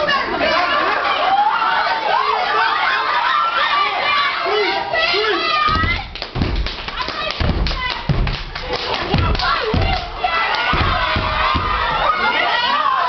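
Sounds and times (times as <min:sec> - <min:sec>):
audience shouting and cheering: 0:00.0 - 0:13.0
heavy foot stomps on stage: 0:05.7 - 0:12.1.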